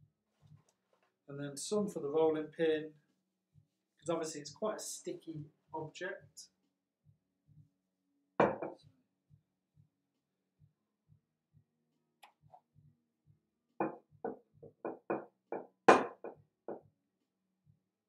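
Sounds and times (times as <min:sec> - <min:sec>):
rolling pin knocking on worktop: 0:08.4 - 0:08.7.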